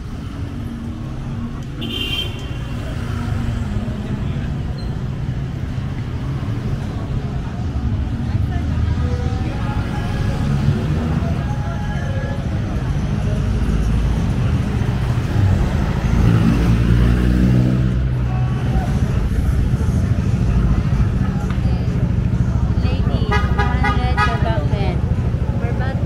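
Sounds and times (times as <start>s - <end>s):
car and motorcycle engines passing: 0.0s - 26.0s
vehicle horn tooting: 1.8s - 2.7s, 23.2s - 24.5s.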